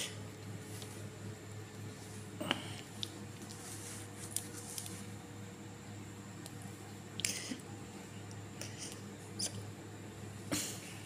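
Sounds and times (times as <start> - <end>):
low steady hum: 0.0 - 11.0
kitten scratching on skin: 3.0 - 5.1.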